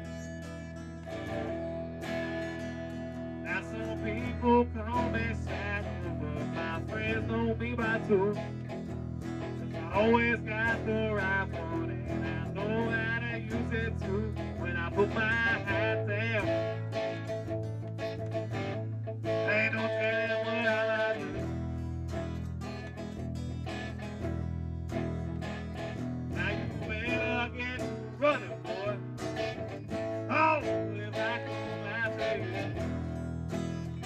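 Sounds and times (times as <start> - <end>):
bass line: 0.0 - 34.0
guitars: 0.0 - 34.0.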